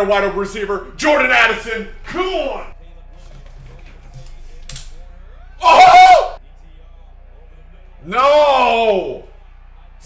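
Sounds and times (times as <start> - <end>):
faint tv commentary: 0.0 - 10.0.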